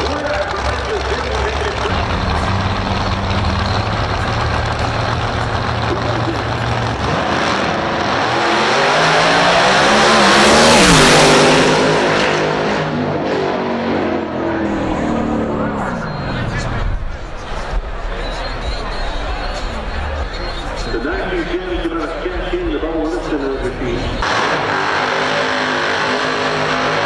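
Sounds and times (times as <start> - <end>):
drag racing cars accelerating: 0.0 - 27.0.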